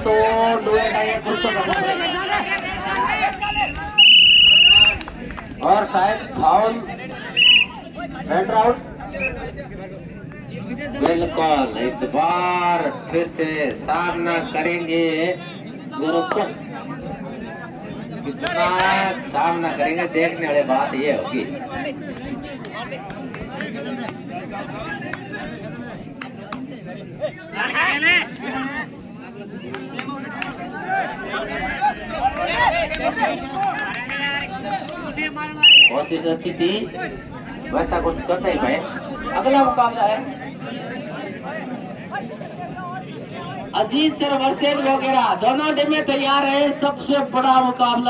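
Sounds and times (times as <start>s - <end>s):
crowd chatter and voices: 0.0s - 48.0s
referee's whistle blasts: 3.5s - 5.0s, 7.4s - 7.7s, 35.6s - 36.1s.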